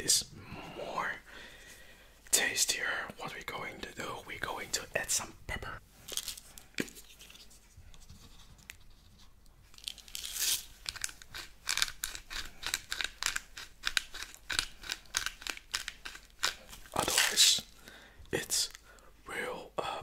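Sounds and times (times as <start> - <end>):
pepper grinder crunching: 9.8 - 17.5.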